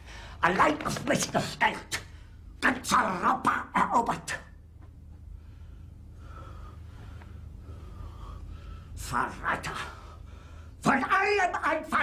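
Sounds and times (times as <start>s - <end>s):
low steady hum: 0.0s - 12.0s
man breathing heavily: 5.3s - 9.0s, 9.9s - 10.8s.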